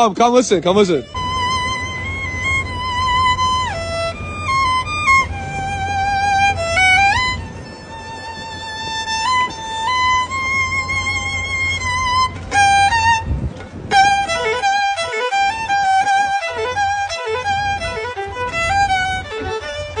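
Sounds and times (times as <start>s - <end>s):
solo violin slow melody: 0.7s - 20.0s.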